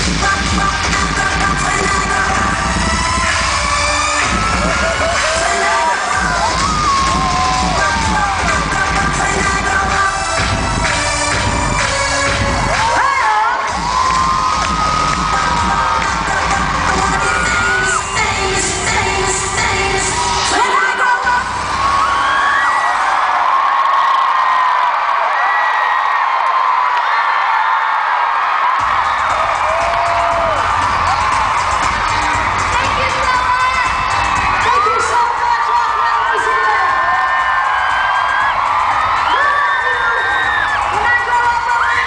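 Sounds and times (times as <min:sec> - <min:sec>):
live pop music: 0:00.0 - 0:23.3, 0:28.6 - 0:42.0
crowd screaming and cheering: 0:00.0 - 0:42.0.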